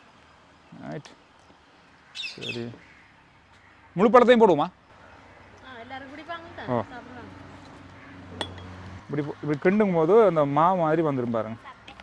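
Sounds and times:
bird high calls: 1.8 - 4.0, 7.6 - 8.8.

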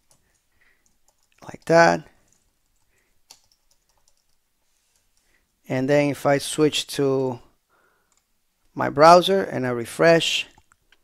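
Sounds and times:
faint keyboard typing: 0.0 - 5.6, 8.0 - 8.4.

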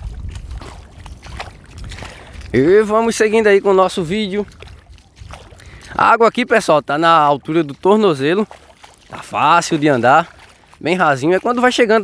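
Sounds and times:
feet wading through water: 0.0 - 12.0
wind rumbling on microphone: 0.0 - 12.0.

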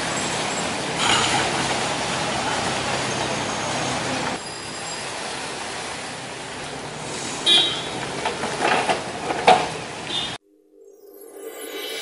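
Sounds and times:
street traffic: 0.0 - 10.4
high-pitched squeal: 10.7 - 12.0.

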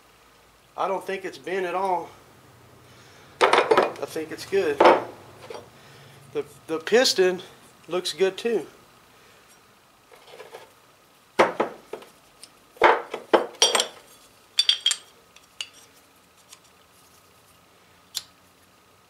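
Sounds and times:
metal parts clinking: 13.5 - 15.9.

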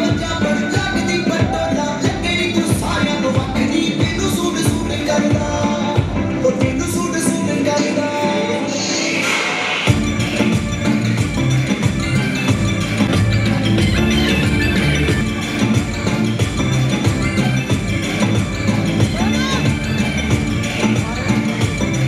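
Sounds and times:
heavy bass beat: 0.0 - 8.0, 9.1 - 22.0
dance song over speakers: 0.0 - 22.0.

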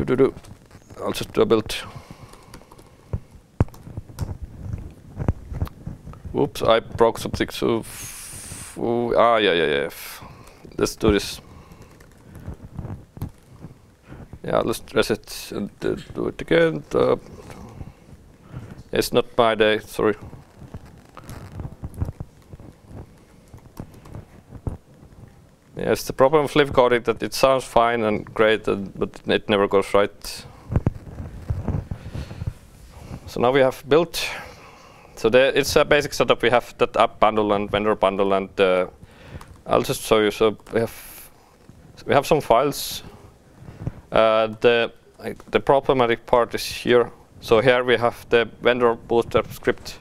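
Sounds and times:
person speaking: 0.0 - 4.3, 5.5 - 12.8, 14.0 - 22.8, 25.7 - 30.8, 31.5 - 39.0, 39.6 - 41.4, 42.0 - 43.3, 44.1 - 50.0
laptop keyboard typing: 1.9 - 5.4, 10.4 - 13.6, 20.4 - 24.9
laptop keyboard keystrokes: 2.2 - 4.4.

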